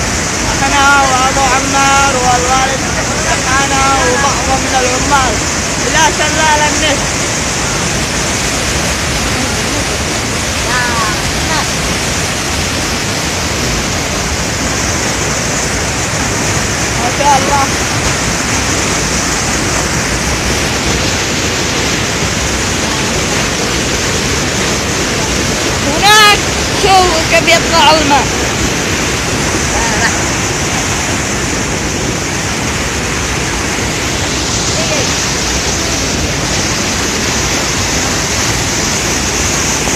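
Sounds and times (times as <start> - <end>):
water rushing over rocks: 0.0 - 39.9.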